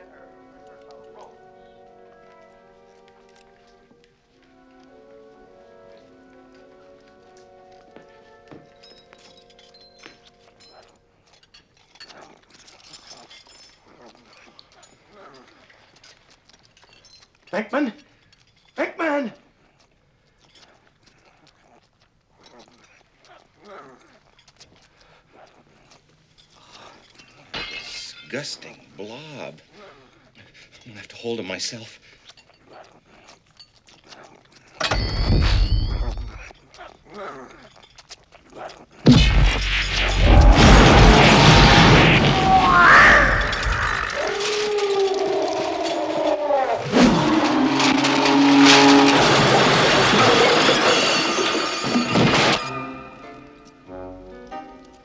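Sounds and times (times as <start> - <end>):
quiet orchestral film music: 0.0 - 10.8, 52.6 - 55.0
creature grunting and gobbling: 42.2 - 48.4.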